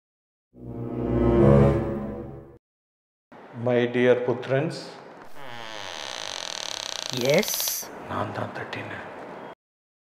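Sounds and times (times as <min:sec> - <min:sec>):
drawn-out creak of fine clicks: 0:05.2 - 0:07.8.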